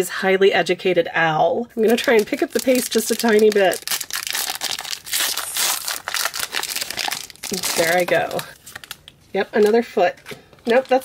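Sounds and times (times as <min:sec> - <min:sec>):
foil wrapper tearing and crinkling: 0:01.8 - 0:09.2.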